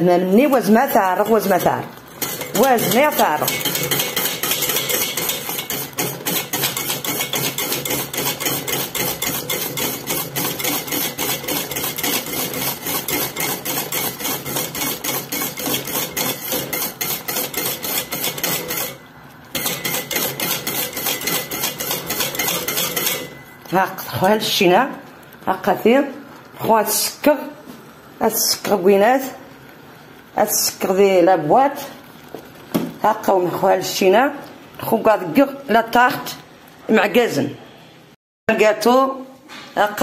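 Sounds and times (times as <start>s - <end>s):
utensil scraping a metal pot: 0.9s - 23.8s.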